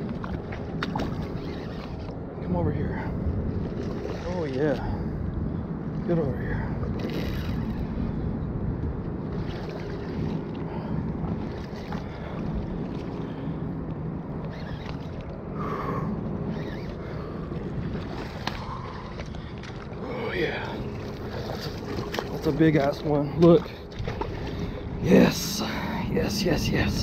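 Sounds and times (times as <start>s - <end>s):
water lapping against rocks: 16.5s - 25.8s.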